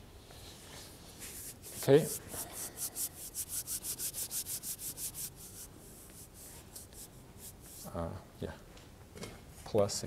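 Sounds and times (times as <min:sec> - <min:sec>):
hands rubbing together: 0:01.1 - 0:08.0.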